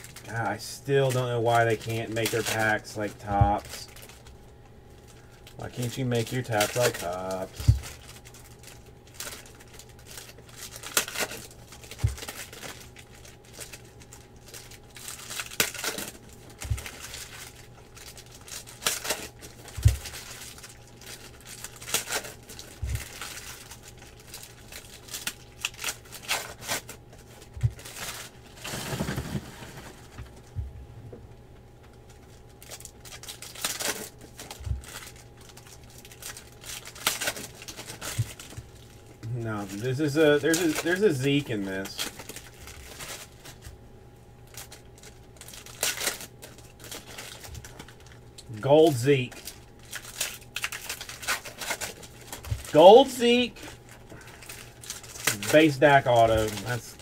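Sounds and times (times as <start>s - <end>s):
wrappers tearing and crinkling: 0.0s - 30.5s, 32.0s - 43.8s, 44.4s - 57.0s.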